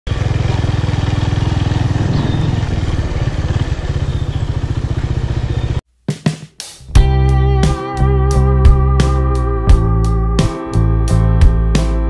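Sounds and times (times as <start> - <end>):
motorcycle engine idling: 0.1 - 5.8.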